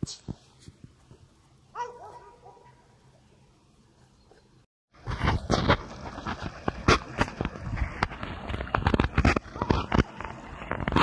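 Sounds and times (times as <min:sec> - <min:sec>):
dog yipping: 0:01.8 - 0:02.7.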